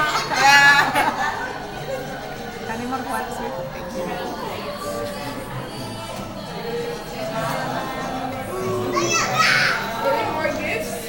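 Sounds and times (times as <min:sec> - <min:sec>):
background music: 0:00.0 - 0:11.0
indistinct voices: 0:00.0 - 0:11.0.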